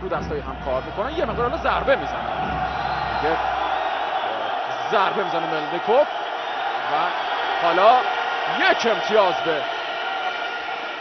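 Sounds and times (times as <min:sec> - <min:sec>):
man commentating: 0:00.0 - 0:03.6, 0:04.3 - 0:06.1, 0:06.8 - 0:09.7
arena crowd din: 0:00.0 - 0:11.0.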